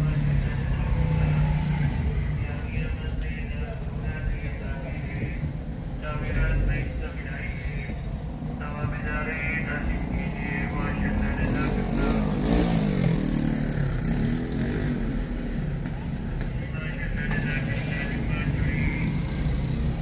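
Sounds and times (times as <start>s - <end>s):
steady low traffic rumble: 0.0s - 20.0s
vehicle engines passing: 0.0s - 20.0s.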